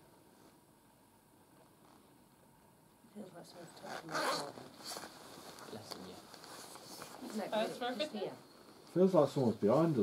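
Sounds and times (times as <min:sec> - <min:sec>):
clothing zip rasping: 0:03.8 - 0:05.6.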